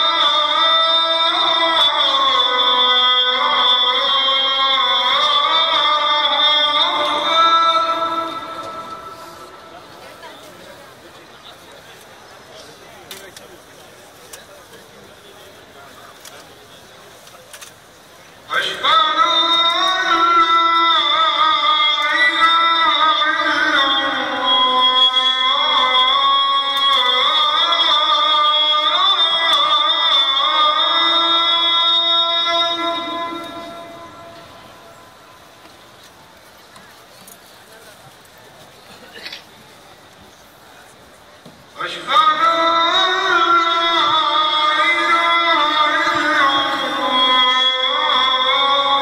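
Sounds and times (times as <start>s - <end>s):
man's call to prayer over loudspeakers: 0.0s - 10.9s, 18.4s - 35.6s, 41.7s - 49.0s
murmur of large crowd: 0.0s - 49.0s.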